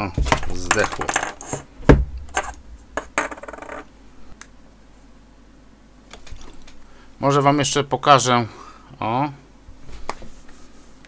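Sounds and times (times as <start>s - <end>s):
clicks and knocks of small objects: 0.0s - 3.9s.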